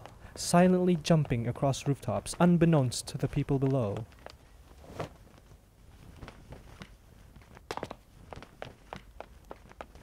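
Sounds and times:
quick uneven footsteps: 0.0s - 10.0s.

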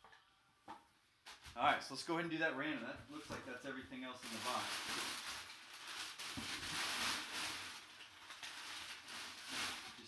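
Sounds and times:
packing paper rustling and crinkling: 3.1s - 10.0s.

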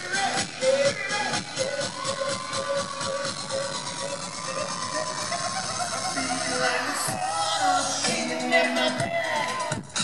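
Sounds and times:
live pop music over loudspeakers: 0.0s - 10.0s
person singing or shouting: 0.0s - 10.0s.

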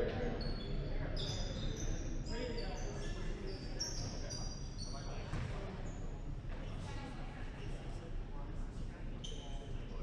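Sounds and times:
voices echoing in gymnasium: 0.0s - 10.0s.

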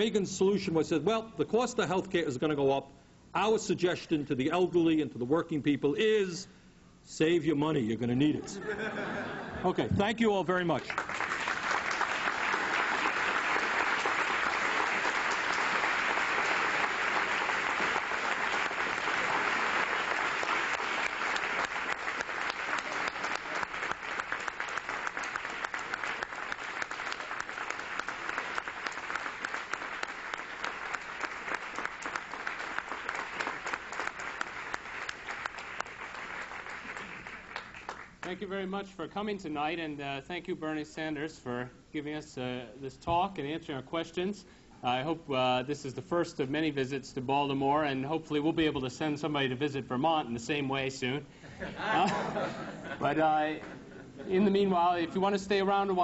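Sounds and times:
audience applauding: 10.8s - 38.3s.

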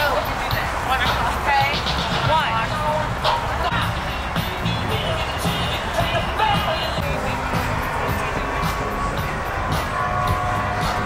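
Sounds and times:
music with thumping bass beat: 0.0s - 11.0s
people talking: 0.0s - 11.0s.

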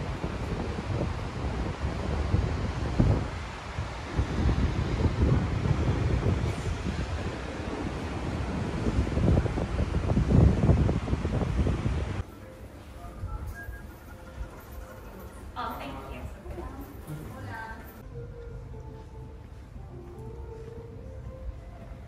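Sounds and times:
wind buffeting microphone: 0.0s - 12.2s.

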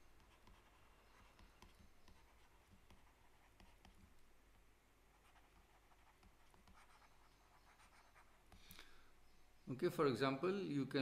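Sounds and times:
stylus writing on tablet: 0.0s - 8.7s.

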